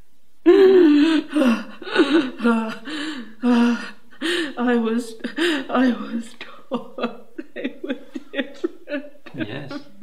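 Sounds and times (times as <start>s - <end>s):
woman sobbing: 0.4s - 10.0s.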